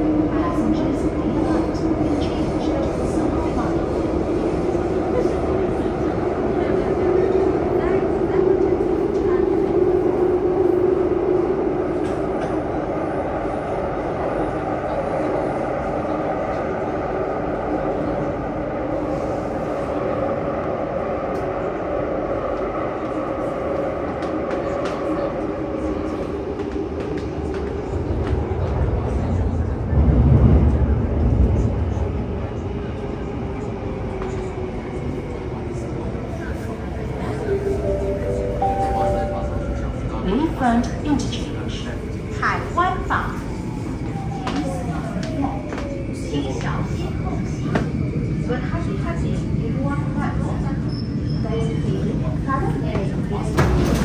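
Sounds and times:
train rumbling in motion: 0.0 - 54.0.

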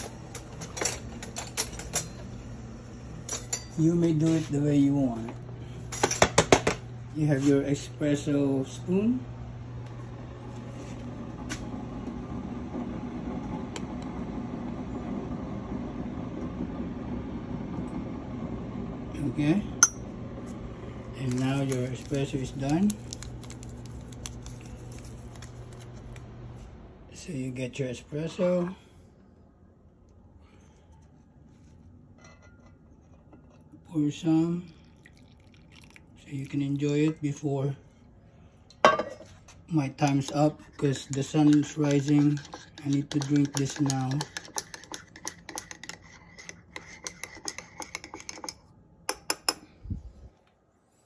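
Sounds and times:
steady low hum: 0.0 - 51.0
spoon clinking in mug: 40.8 - 46.0.

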